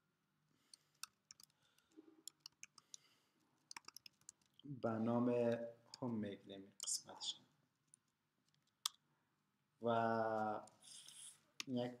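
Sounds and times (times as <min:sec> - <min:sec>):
man speaking: 0:04.7 - 0:07.5, 0:09.8 - 0:10.8, 0:11.6 - 0:12.0.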